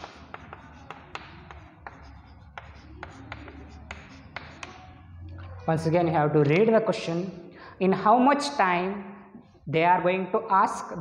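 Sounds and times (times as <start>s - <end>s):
chalk tapping and scratching on blackboard: 0.0s - 5.7s.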